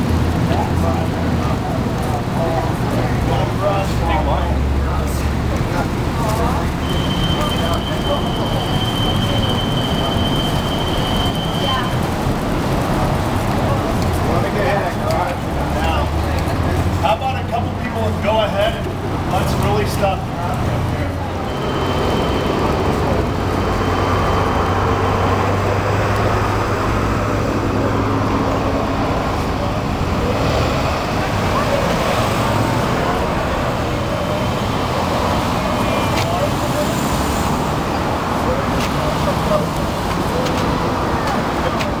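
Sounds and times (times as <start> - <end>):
indistinct voices: 0.0 - 42.0
vehicles passing close by: 0.0 - 42.0.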